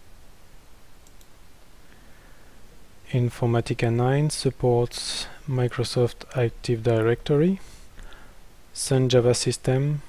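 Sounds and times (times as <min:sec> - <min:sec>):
recording hiss: 0:00.0 - 0:10.0
computer mouse click: 0:01.0 - 0:01.3.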